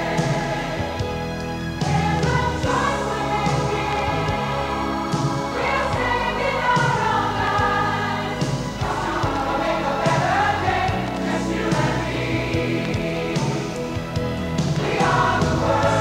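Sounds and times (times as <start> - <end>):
band accompaniment with steady beat: 0.0 - 16.0
choir singing gospel ballad: 0.0 - 16.0.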